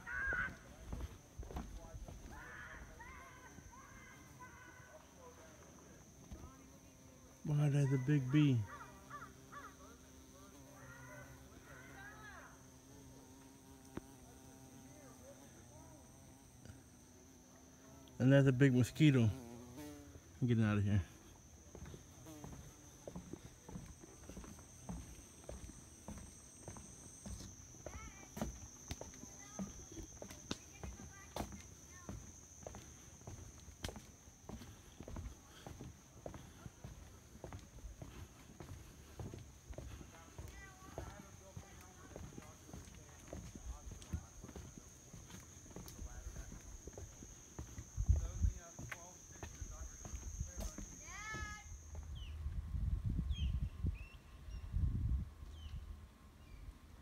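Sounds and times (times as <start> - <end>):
footsteps on wooden boardwalk: 0.0 - 4.4, 5.6 - 6.5, 21.2 - 52.3
high-pitched insect drone: 2.2 - 52.4
wind rumble on microphone: 52.1 - 56.0.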